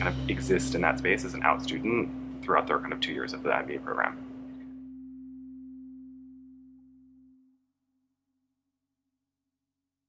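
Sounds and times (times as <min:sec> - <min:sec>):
steady low drone: 0:00.0 - 0:07.5.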